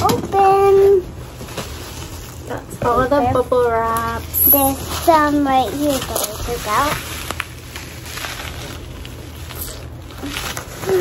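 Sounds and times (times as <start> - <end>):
bubble wrap rustling and crinkling: 0.0 - 11.0.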